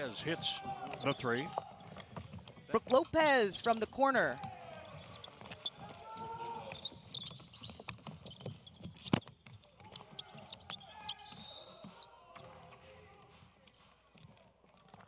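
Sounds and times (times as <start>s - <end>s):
players calling out: 0.0s - 13.5s
sneakers squeaking: 0.0s - 15.0s.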